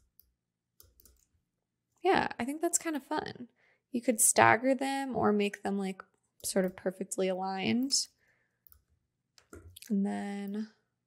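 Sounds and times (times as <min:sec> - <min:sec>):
computer mouse clicks: 0:00.0 - 0:01.3.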